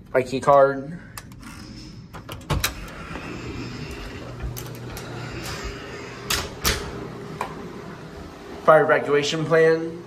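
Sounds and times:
steady hiss of door: 2.2s - 8.2s.

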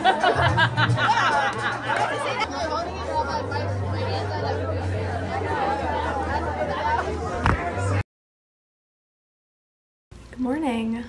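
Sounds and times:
people talking and laughing: 0.0s - 8.0s.

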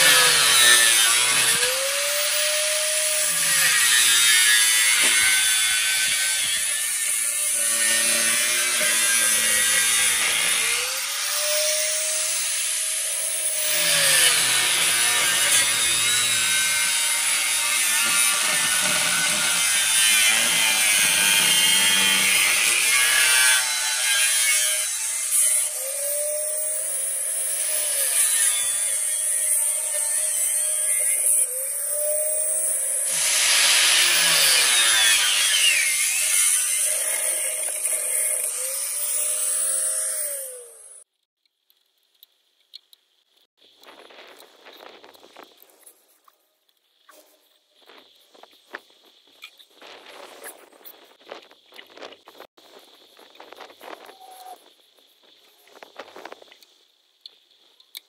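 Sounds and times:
handheld grinder grinding: 0.0s - 41.1s.

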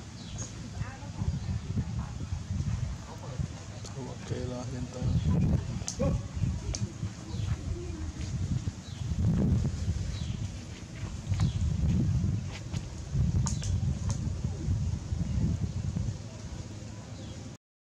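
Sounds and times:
wind rumbling on microphone: 0.0s - 17.6s.

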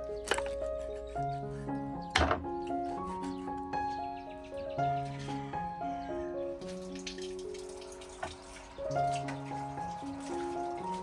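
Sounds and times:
gentle instrumental music: 0.0s - 11.0s.

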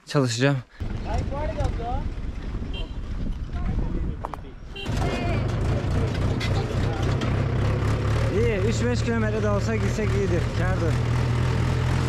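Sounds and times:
tractor engine running: 4.8s - 12.0s.

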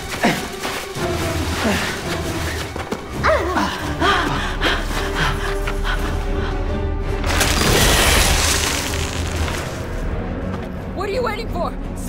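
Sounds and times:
low film score: 0.0s - 12.0s.

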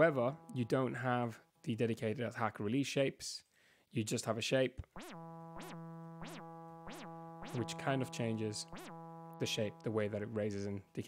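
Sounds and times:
buzzy synthesizer note with sweep: 5.0s - 10.8s.

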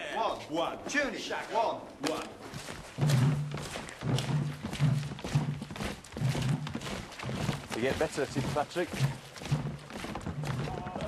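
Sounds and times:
slow low drum beat: 2.9s - 11.0s.

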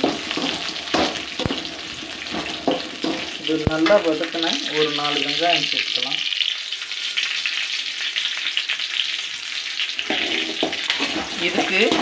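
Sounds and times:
food sizzling in hot oil: 0.0s - 12.0s.

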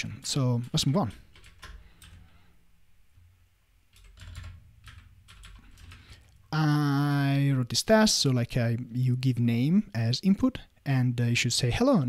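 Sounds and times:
keyboard typing: 0.6s - 2.3s, 3.9s - 6.4s.

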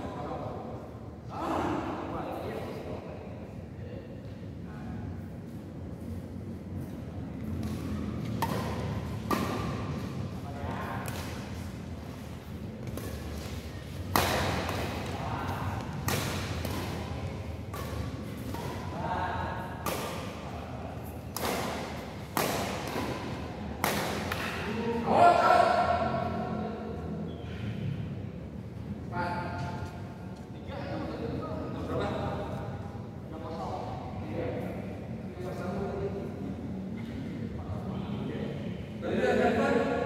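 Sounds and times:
badminton racket striking shuttlecock: 7.6s - 10.1s, 12.8s - 15.2s, 15.8s - 19.0s, 19.7s - 20.5s, 21.2s - 24.7s.

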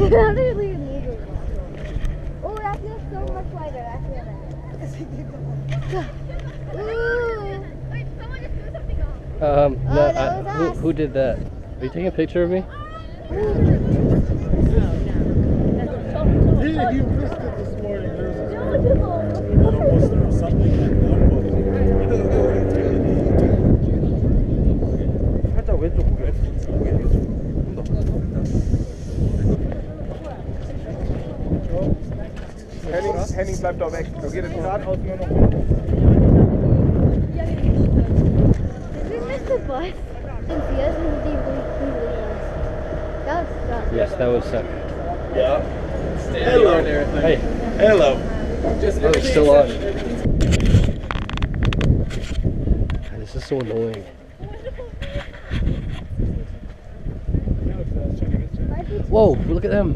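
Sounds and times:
people talking nearby: 0.0s - 59.9s
wind buffeting microphone: 0.0s - 59.9s.

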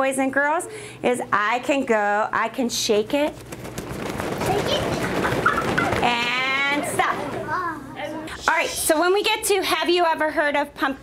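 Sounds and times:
fabric rustling and fluttering: 3.0s - 7.6s.

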